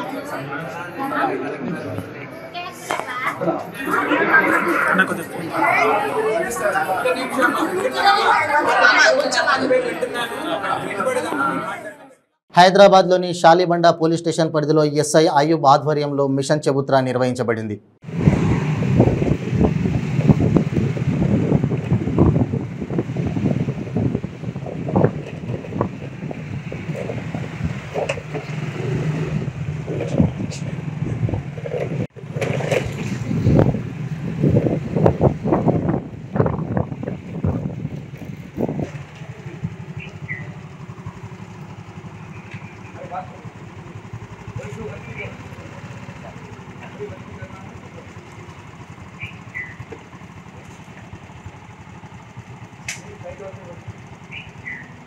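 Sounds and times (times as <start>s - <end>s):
people talking indistinctly: 0.0s - 17.7s, 42.2s - 48.5s, 52.9s - 54.8s.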